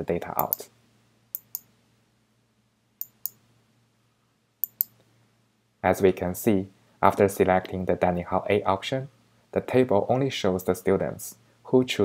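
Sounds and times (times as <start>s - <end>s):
mouse button clicks: 4.6s - 5.0s.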